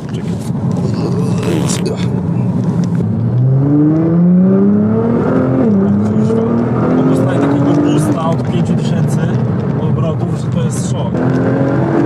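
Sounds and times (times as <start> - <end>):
car engine accelerating hard: 0.6 - 12.0.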